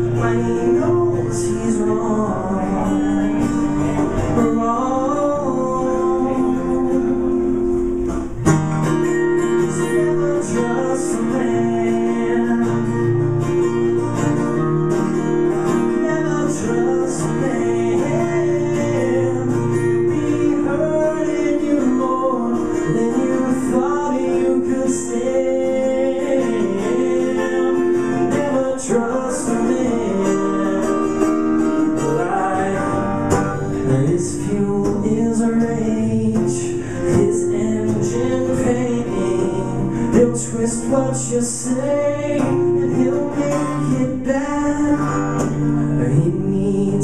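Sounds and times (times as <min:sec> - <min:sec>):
two guitars playing: 0:00.0 - 0:47.0.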